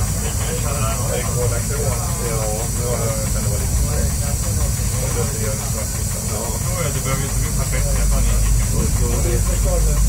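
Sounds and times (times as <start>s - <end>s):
railcar engine droning: 0.0s - 10.0s
man talking: 0.1s - 10.0s.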